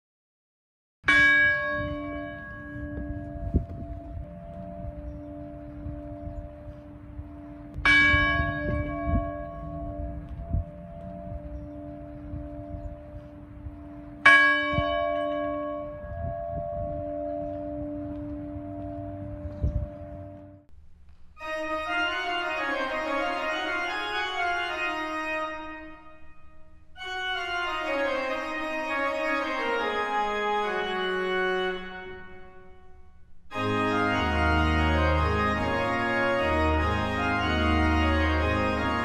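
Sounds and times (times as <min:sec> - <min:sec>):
church bell tolling: 0:01.0 - 0:20.7, 0:21.4 - 0:39.0.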